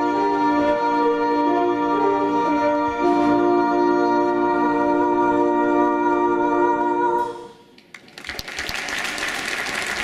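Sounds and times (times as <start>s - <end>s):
audience applauding: 7.9s - 10.0s.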